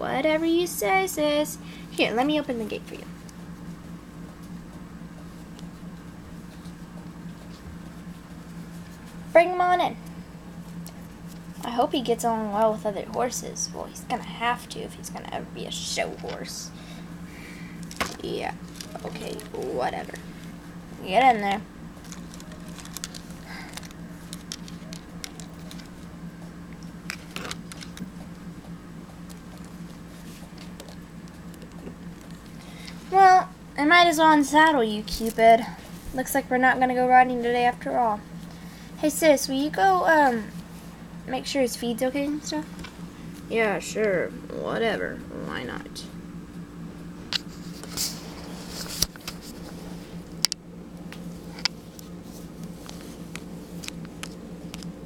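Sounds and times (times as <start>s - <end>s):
low hum: 0.0s - 55.0s.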